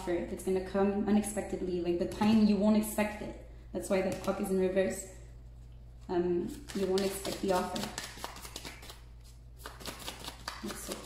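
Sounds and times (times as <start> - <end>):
cards being shuffled by hand: 6.5 - 11.0.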